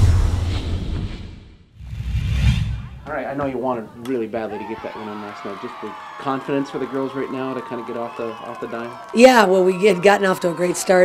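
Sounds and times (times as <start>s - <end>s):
whoosh: 0.0s - 3.0s.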